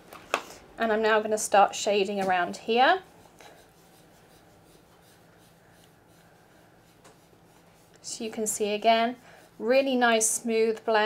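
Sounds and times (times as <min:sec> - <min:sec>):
foam brush rubbing on cardstock: 0:02.5 - 0:11.0.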